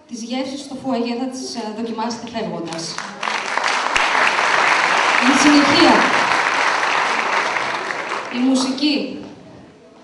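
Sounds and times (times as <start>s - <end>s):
audience applause: 3.0s - 8.8s.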